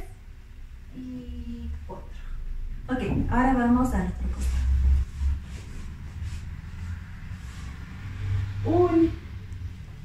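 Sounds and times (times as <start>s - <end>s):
low rumble: 0.4s - 10.0s.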